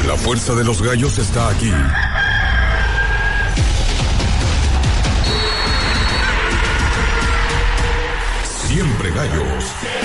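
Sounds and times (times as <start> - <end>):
rooster crowing: 1.9 - 3.6
music with heavy bass: 2.7 - 10.0.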